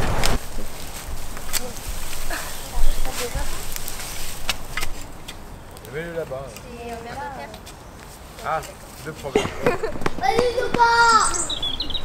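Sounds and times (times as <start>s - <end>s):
rakes scraping dry straw: 0.0s - 5.3s
children's voices: 2.2s - 3.8s, 10.1s - 11.7s.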